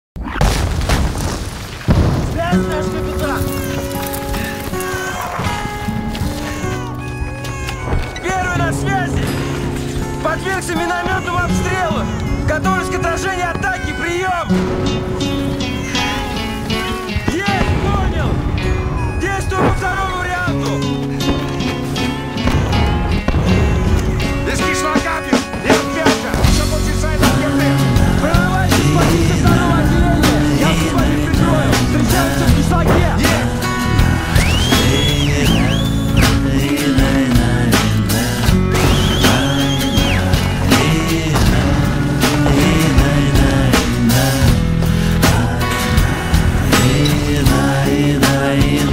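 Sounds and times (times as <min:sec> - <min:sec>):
mortar shells exploding: 0:00.2 - 0:36.8, 0:37.8 - 0:44.6
shouted voices: 0:04.4 - 0:15.0, 0:15.9 - 0:21.3, 0:24.4 - 0:48.9.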